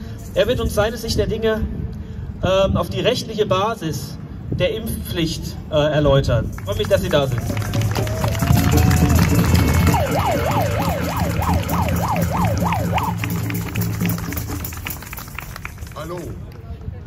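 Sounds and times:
steady low drone: 7.5 - 16.0
siren wailing: 8.0 - 14.2.

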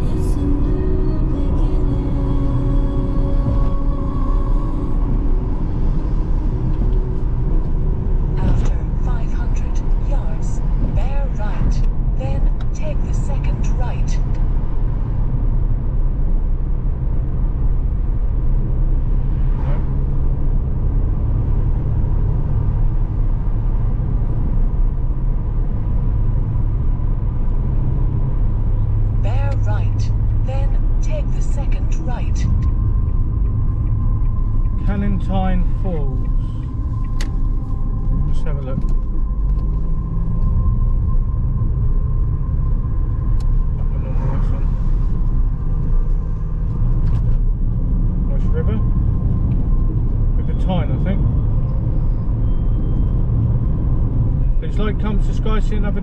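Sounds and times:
music: 0.0 - 5.7
car road and engine noise: 0.0 - 56.0.

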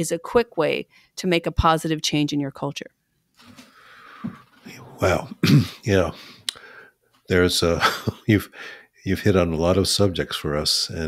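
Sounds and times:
faint breathy breath: 3.6 - 4.4, 6.1 - 7.0, 8.5 - 9.0
person speaking: 4.1 - 11.0.

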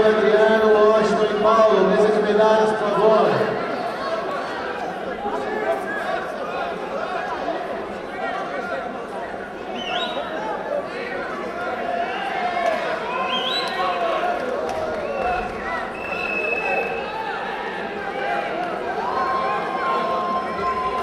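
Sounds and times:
chatter of many voices: 0.0 - 21.0.

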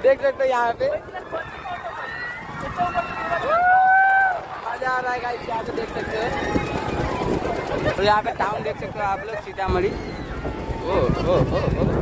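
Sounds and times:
riders crying out: 1.0 - 4.6, 9.0 - 12.0.

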